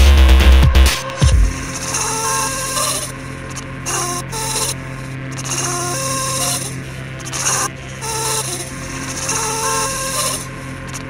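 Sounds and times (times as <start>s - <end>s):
low bass drone: 0.0s - 11.0s
raspy high noise: 0.8s - 3.2s.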